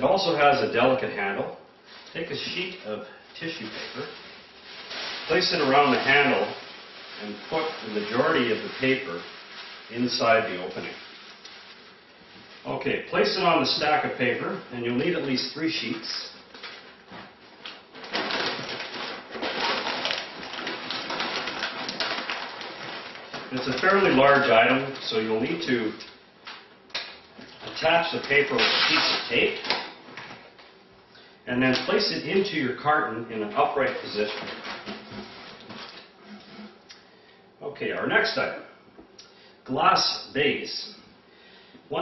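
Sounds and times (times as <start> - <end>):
packing paper crinkling: 1.8 - 12.7, 15.2 - 30.8, 33.5 - 36.8.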